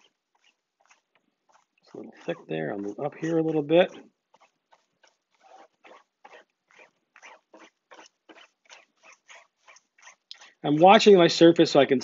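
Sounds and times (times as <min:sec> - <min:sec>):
bristle brush scrubbing fabric: 0:00.0 - 0:11.5.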